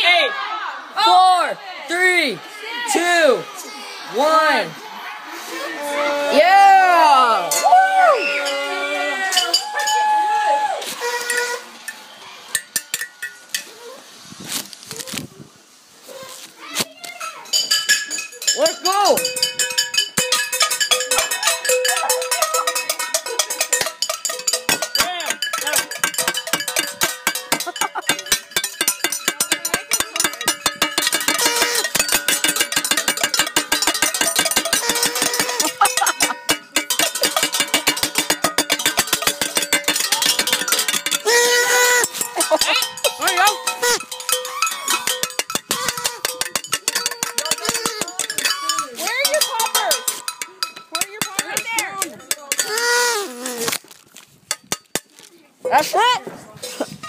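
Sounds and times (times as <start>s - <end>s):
people shouting: 0.0s - 11.6s, 39.4s - 46.3s
ringing metallic tones: 11.1s - 13.7s, 17.2s - 53.3s
clatter of bangs and clicks: 22.5s - 41.3s.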